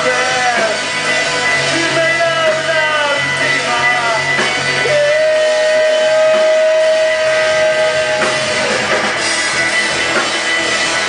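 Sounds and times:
electric guitar high note: 0.0 - 11.0
rock band playing live: 0.0 - 11.0.

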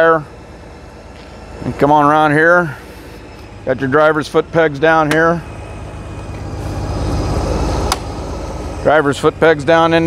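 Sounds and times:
motorcycle engine idling: 0.0 - 10.0
sharp click: 7.9 - 8.1.

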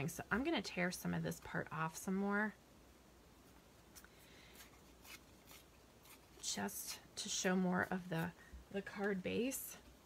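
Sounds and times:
paper tearing: 4.6 - 7.0.

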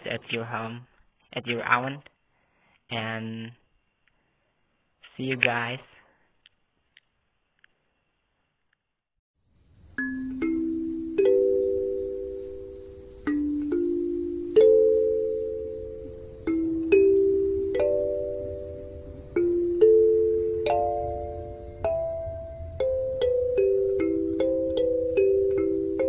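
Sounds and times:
kalimba playing a slow melody: 10.0 - 26.0.

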